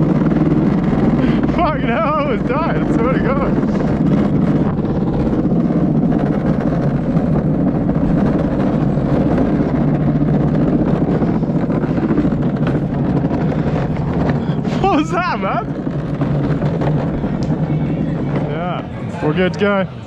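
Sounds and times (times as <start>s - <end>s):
cart rolling on concrete: 0.0s - 20.0s.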